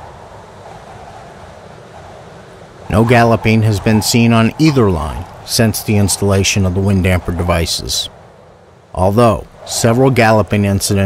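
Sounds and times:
wind blowing on microphone: 0.0s - 11.0s.

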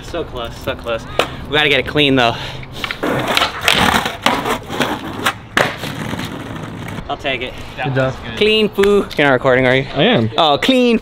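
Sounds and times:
skateboard wheels rolling on concrete: 0.0s - 9.6s
skateboard clacks: 2.8s - 7.0s
skateboard scraping along ledge: 2.8s - 7.0s.

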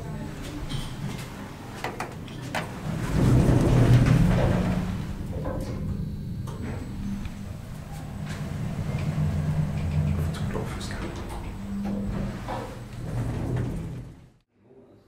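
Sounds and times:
elevator low hum: 0.0s - 14.4s
elevator doors sliding shut: 0.2s - 14.4s.

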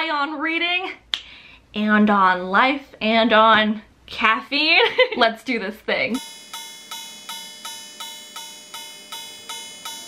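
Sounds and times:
clock chime striking: 6.2s - 10.0s.

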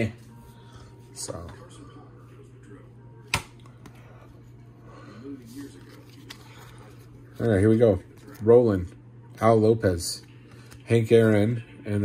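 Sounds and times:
low steady hum: 0.0s - 12.0s
trading cards being handled: 5.4s - 8.6s.

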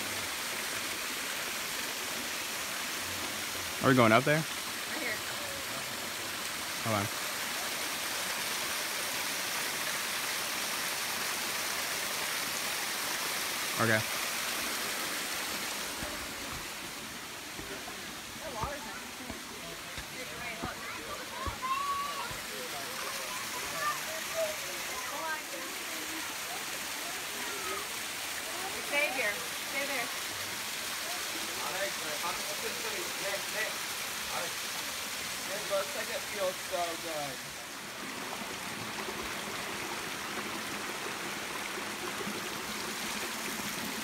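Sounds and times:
waterfall rushing: 0.0s - 44.0s
faint voices: 17.5s - 29.2s.

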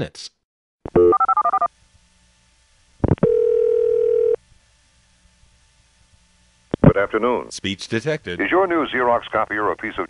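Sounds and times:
steady telephone tone: 1.0s - 1.7s, 3.2s - 4.4s.

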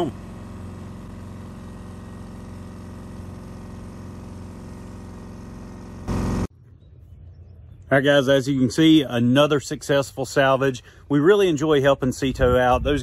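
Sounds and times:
engine running steadily: 0.0s - 6.5s.

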